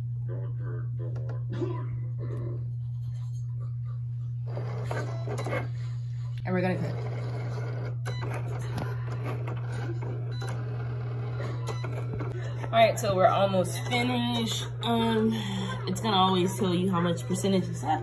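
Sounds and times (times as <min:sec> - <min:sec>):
low hum: 0:00.0 - 0:18.0
cutting machine cutting card: 0:04.4 - 0:05.8, 0:06.5 - 0:14.9
indistinct voices talking: 0:06.5 - 0:18.0.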